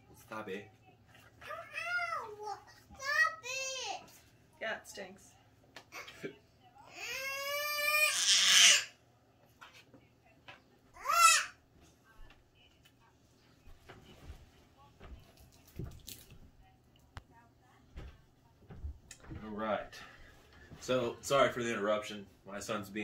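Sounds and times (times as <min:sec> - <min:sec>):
young child crying: 0:11.0 - 0:11.5.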